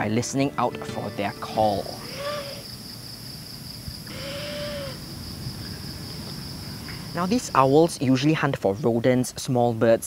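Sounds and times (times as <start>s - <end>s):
night insects droning: 0.0s - 9.8s
owl screech: 2.0s - 2.8s, 4.1s - 5.1s.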